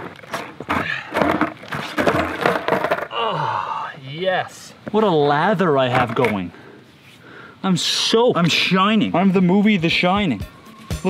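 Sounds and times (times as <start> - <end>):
skateboard knocking on asphalt: 0.6 - 3.1.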